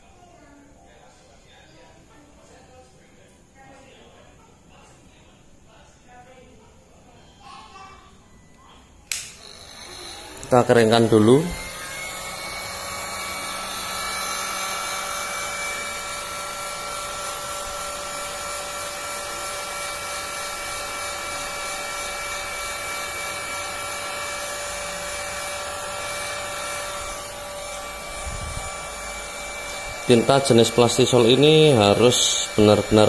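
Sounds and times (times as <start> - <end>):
hot air gun running: 9.1 - 33.0.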